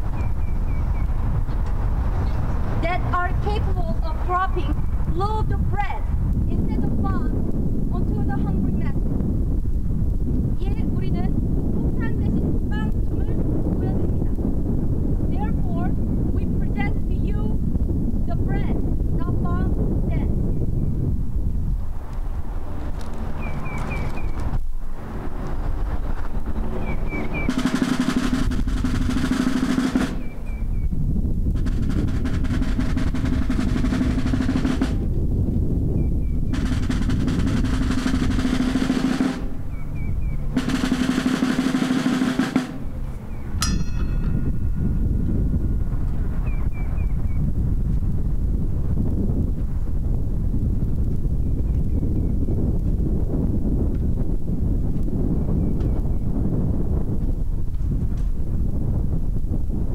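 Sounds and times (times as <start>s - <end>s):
wind rumble on microphone: 0.0s - 59.9s
snare drum rolls: 27.1s - 30.8s, 31.5s - 35.1s, 36.5s - 43.0s.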